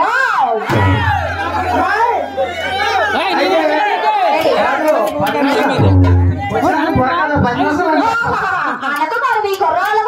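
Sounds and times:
voices talking over one another: 0.5 - 8.8
low steady hum: 0.7 - 6.8.

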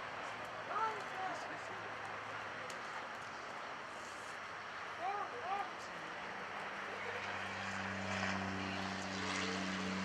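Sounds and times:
low engine drone: 6.0 - 10.0.

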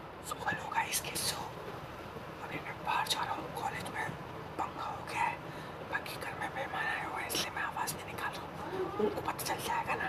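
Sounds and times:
man whispering: 0.2 - 1.6, 2.4 - 10.0.

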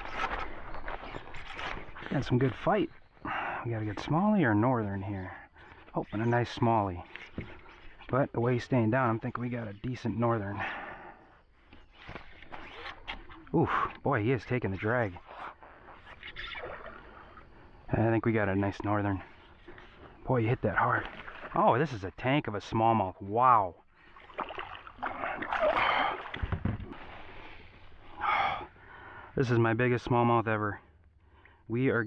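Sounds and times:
water splashing: 14.4 - 17.7, 18.7 - 22.0, 24.0 - 28.8
dull thumps: 26.3 - 27.0.

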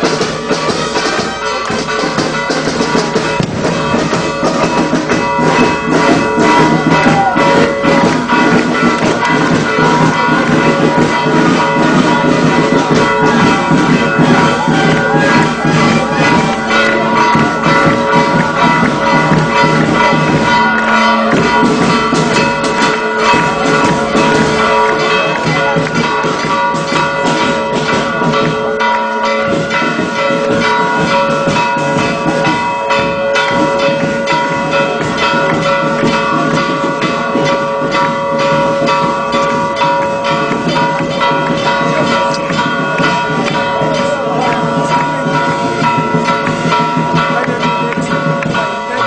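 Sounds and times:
church bells ringing: 0.0 - 49.0.

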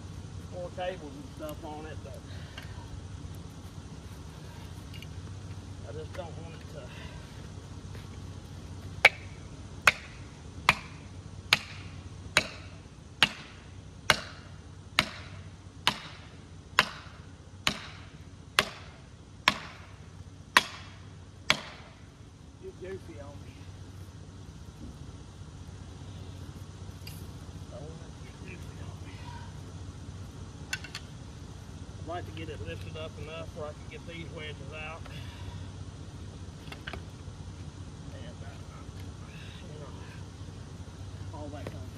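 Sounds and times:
hammer striking wedges: 9.0 - 22.0.

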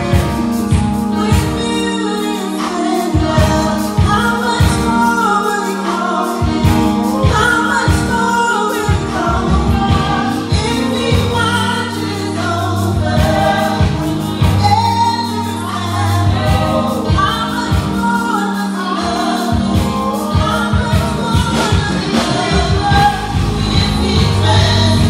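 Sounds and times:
group singing into microphones: 0.0 - 25.0.

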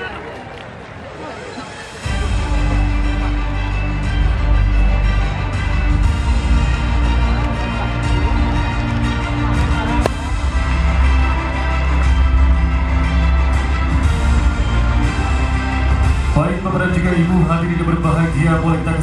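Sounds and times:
music with long held notes: 2.0 - 18.0
deep bass: 8.0 - 17.2.

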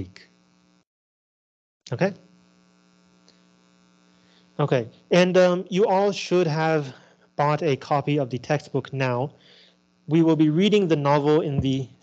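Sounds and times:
electrical buzzing hum: 0.0 - 0.9, 1.8 - 12.0.

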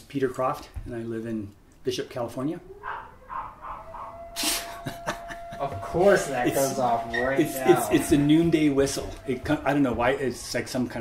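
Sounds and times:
siren-like whistle: 3.9 - 11.0.

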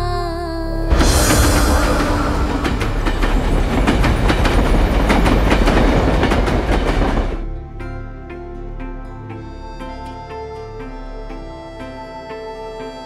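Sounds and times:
train rumble: 0.9 - 7.4
train wheels clattering: 0.9 - 7.4.

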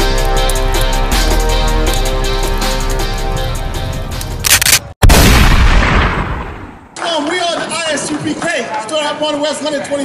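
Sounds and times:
intro music with held chords: 0.0 - 4.4
heavy cinematic boom: 5.0 - 6.8.

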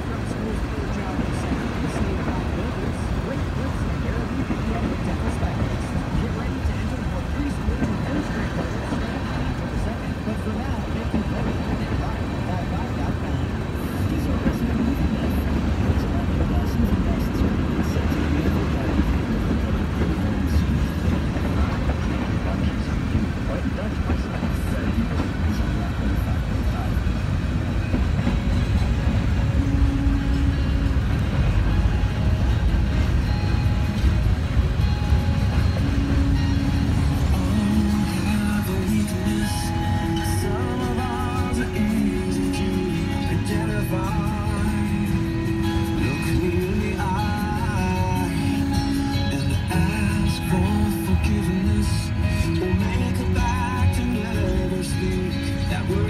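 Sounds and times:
freight train wheels rumbling: 0.0 - 56.0.

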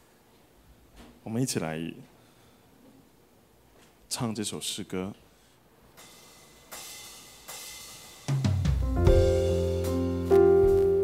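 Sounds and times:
ringing cymbal strokes: 6.0 - 8.3
bass and keyboard chords: 8.5 - 11.0.

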